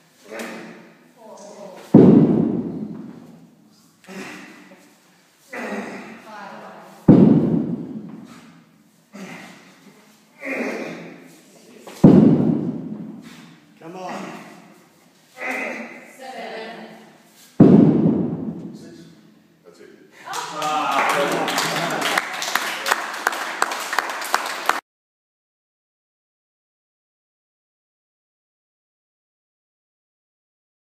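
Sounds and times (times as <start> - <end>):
people clapping: 20.2 - 24.8
sharp loud claps: 20.3 - 24.8
crowd noise: 20.4 - 23.3.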